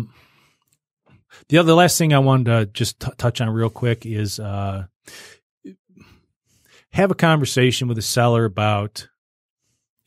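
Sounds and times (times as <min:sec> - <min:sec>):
man speaking: 0:01.4 - 0:05.3, 0:06.9 - 0:09.1
short intake of breath: 0:05.1 - 0:05.4.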